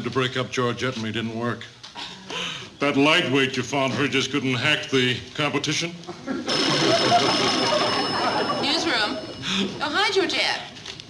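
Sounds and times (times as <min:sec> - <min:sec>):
audience laughing: 0:06.2 - 0:09.8.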